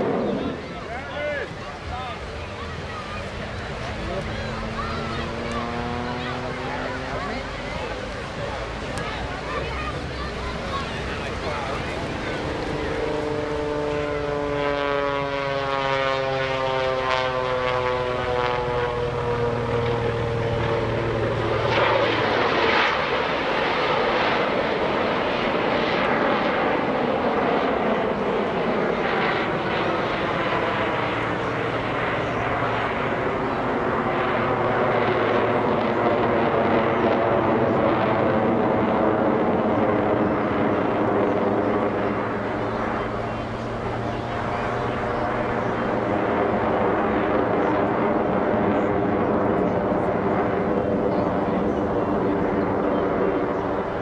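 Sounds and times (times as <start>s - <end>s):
biplane engine flying overhead: 0.0s - 54.0s.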